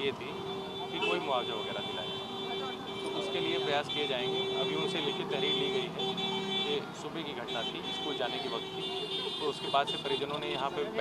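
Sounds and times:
man speaking: 0.0s - 2.2s, 3.2s - 11.0s
road traffic noise: 0.0s - 11.0s.

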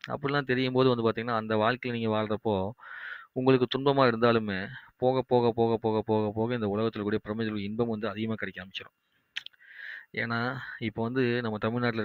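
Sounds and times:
man talking: 0.0s - 2.8s, 3.4s - 9.0s, 10.2s - 12.0s
soft hiss: 0.0s - 12.0s.

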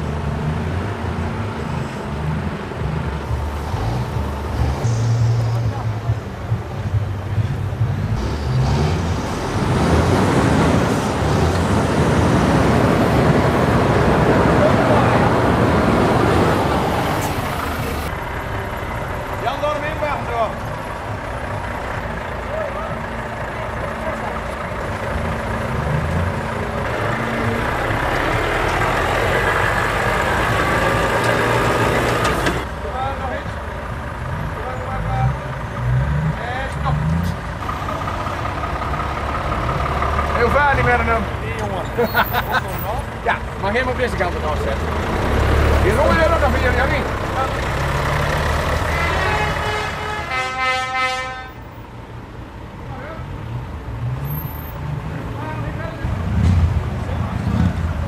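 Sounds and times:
diesel truck engines running: 0.0s - 58.0s.

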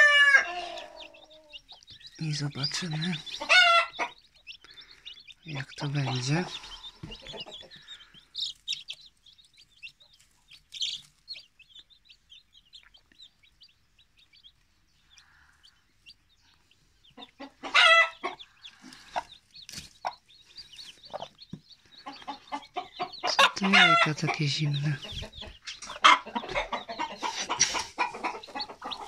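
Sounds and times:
chicks peeping: 0.0s - 29.0s
hen clucking: 0.0s - 29.0s.

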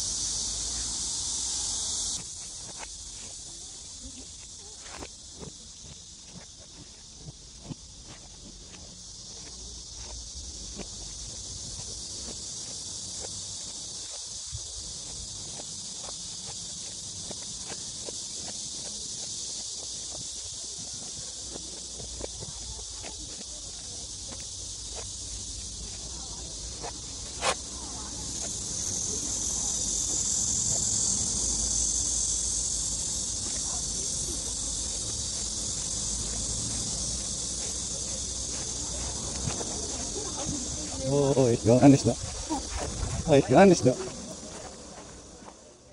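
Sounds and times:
high-pitched insect chorus: 0.0s - 45.9s.

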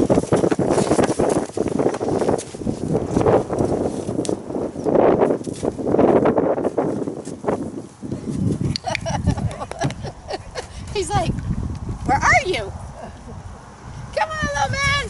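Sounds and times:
horse hooves in sand: 0.0s - 12.5s.

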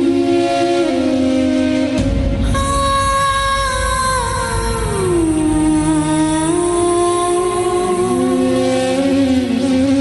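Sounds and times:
sustained gliding music notes: 0.0s - 10.0s.

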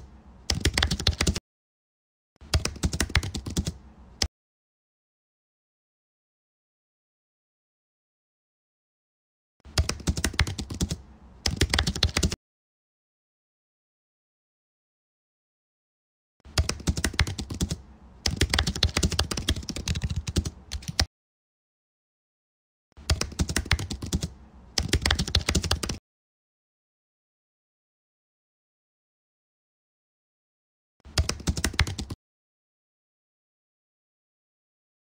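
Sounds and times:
computer keyboard typing: 0.5s - 1.4s, 2.4s - 3.8s, 9.7s - 12.4s, 16.5s - 21.1s, 23.0s - 26.0s, 31.1s - 32.2s.

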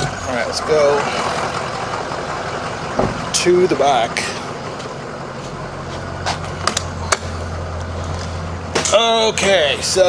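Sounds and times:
ambulance engine idling: 0.0s - 10.0s.

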